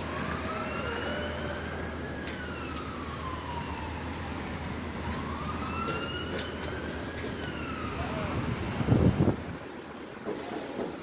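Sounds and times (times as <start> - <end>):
emergency siren wailing: 0.0 - 9.5
traffic noise: 0.0 - 11.0.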